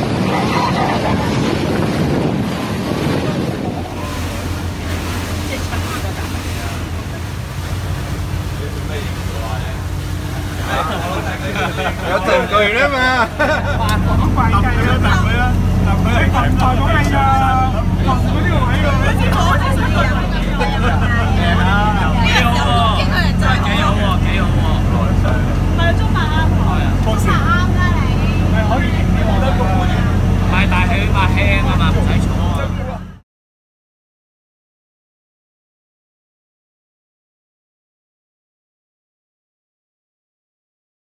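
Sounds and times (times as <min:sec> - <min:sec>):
ferry engine humming: 0:00.0 - 0:33.2
passengers chattering: 0:03.4 - 0:33.1.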